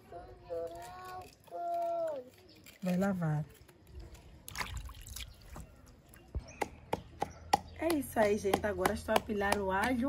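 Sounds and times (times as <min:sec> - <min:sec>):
pestle pounding in wooden mortar: 0:06.4 - 0:10.0.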